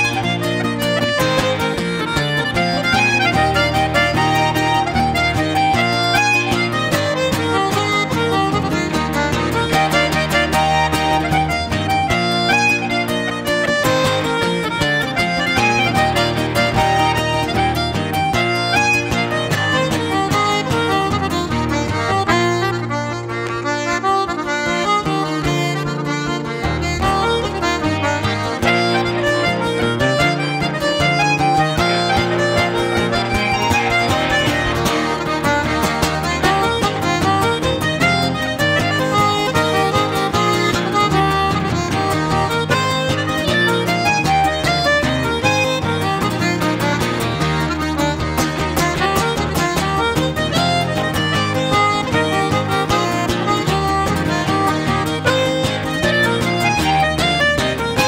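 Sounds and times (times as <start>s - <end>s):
button accordion playing dance tune: 0.0s - 58.0s
guitar accompaniment: 0.0s - 58.0s.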